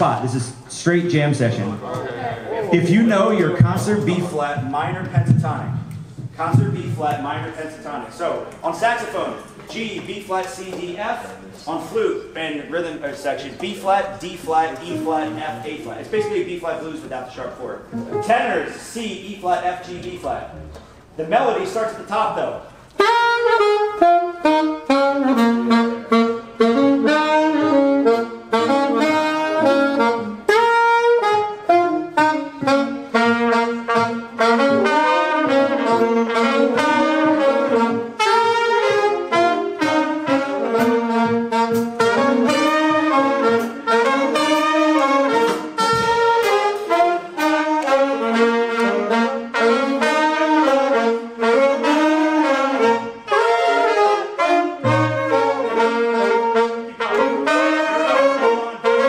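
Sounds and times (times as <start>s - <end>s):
upright bass: 0.0s - 8.8s, 17.8s - 22.6s
saxophones and trumpets melody: 0.0s - 59.0s
piano: 14.0s - 59.0s.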